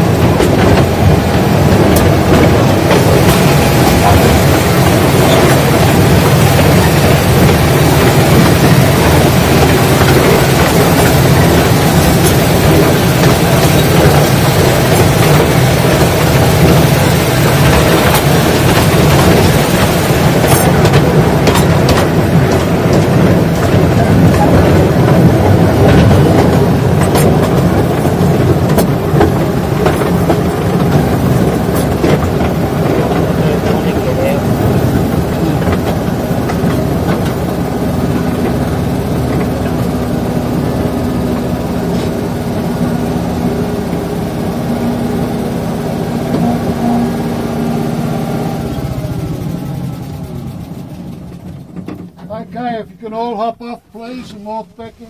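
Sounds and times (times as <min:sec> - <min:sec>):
train wheels clicking over rails: 0:00.0 - 0:52.6
train engine rumble: 0:00.0 - 0:55.0.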